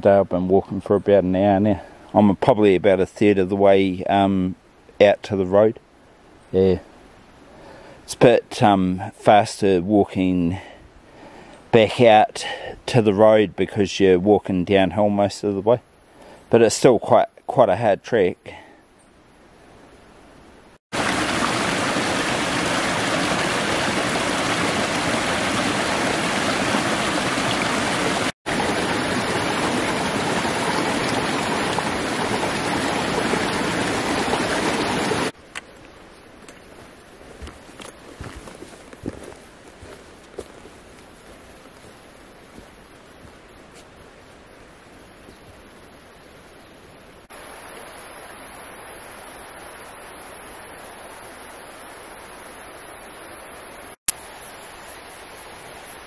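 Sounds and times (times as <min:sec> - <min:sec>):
stream rushing over boulders: 0:20.9 - 0:35.4, 0:47.2 - 0:56.0.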